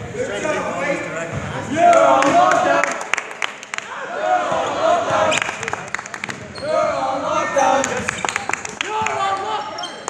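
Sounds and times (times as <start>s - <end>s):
sneakers squeaking: 6.3s - 10.0s.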